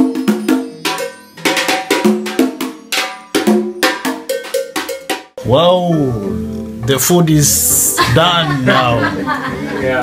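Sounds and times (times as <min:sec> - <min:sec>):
conga drums: 0:00.0 - 0:10.0.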